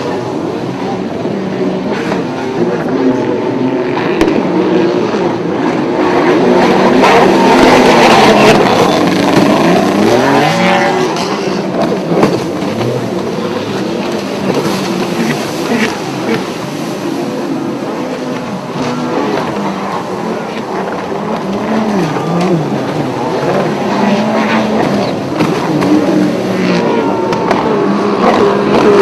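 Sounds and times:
jet ski engines at speed: 0:00.0 - 0:29.0.

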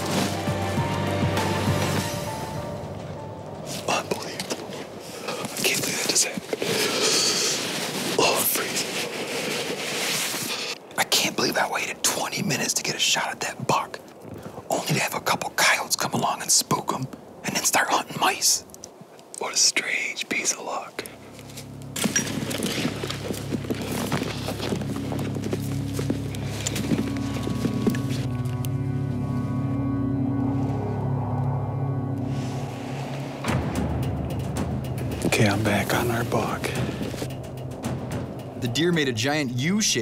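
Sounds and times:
music of low chords: 0:00.0 - 0:04.3, 0:21.2 - 0:40.0
whispered speech: 0:03.8 - 0:04.6, 0:19.4 - 0:21.0.

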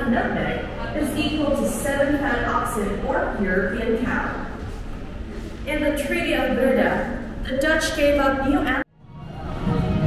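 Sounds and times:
low room hubbub: 0:00.0 - 0:10.0.

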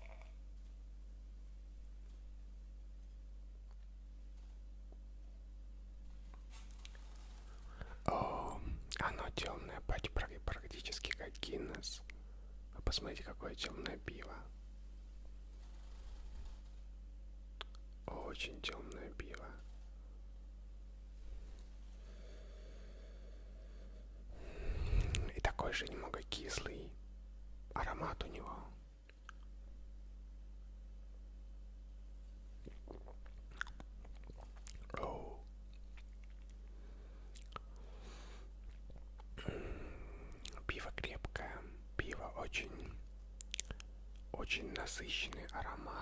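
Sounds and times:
soft whispering: 0:06.5 - 0:14.6, 0:17.6 - 0:19.9, 0:21.2 - 0:27.0, 0:27.7 - 0:29.5, 0:32.7 - 0:37.8, 0:38.7 - 0:46.0.

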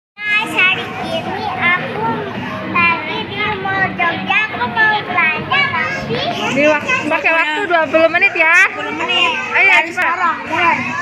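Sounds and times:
children chattering: 0:00.2 - 0:11.0.

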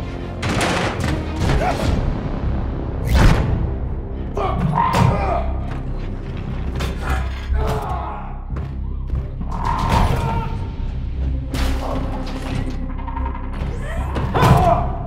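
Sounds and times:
low droning film score: 0:00.0 - 0:15.0.

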